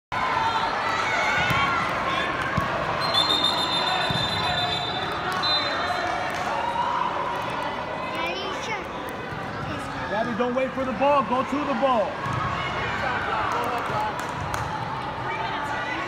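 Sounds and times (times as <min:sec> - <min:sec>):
referee's whistle: 0:03.0 - 0:06.0.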